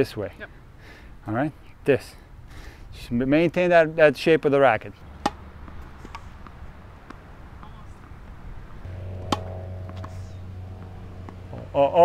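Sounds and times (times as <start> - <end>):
tennis ball struck by racquet: 5.2 - 11.7
low hum with held tones: 5.9 - 12.0.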